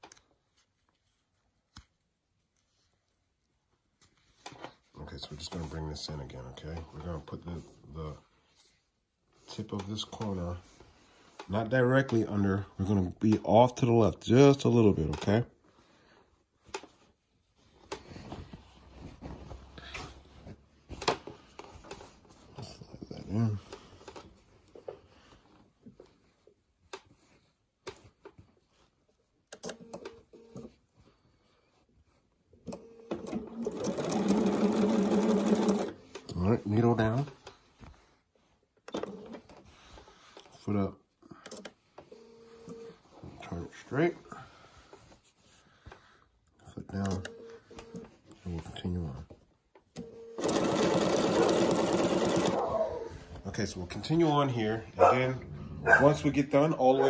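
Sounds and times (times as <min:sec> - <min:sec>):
person speaking: 0:04.9 - 0:08.4, 0:09.4 - 0:10.8, 0:11.4 - 0:15.6, 0:22.5 - 0:24.0, 0:36.2 - 0:37.5, 0:42.8 - 0:44.5, 0:46.6 - 0:49.4, 0:52.5 - 0:57.0
quilt fabric rustling: 0:15.6 - 0:29.4.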